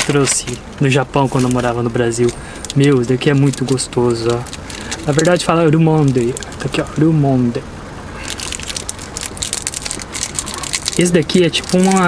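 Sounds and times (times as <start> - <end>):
plastic wrapper crinkling and tearing: 2.6 - 6.8, 8.2 - 12.0.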